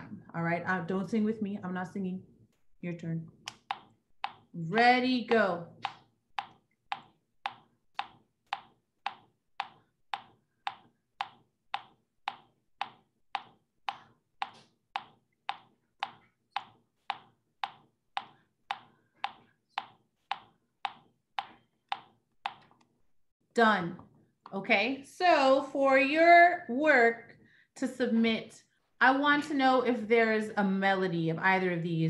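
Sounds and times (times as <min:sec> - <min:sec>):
metronome ticking: 0:03.5 - 0:04.6, 0:05.8 - 0:22.7.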